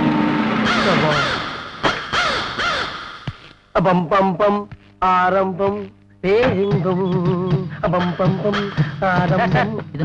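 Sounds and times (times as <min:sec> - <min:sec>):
crow cawing: 0:00.6 - 0:03.2.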